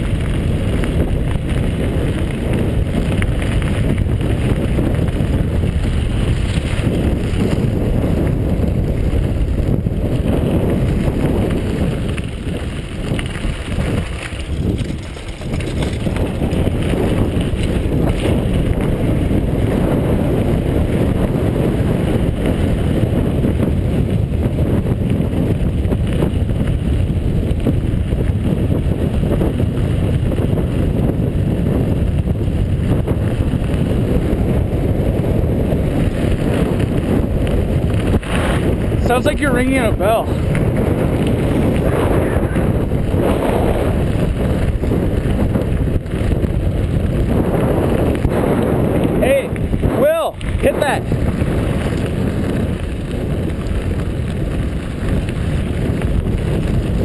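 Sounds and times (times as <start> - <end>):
tyre rumble on gravel: 0.0 - 19.3
wind buffeting microphone: 0.0 - 57.0.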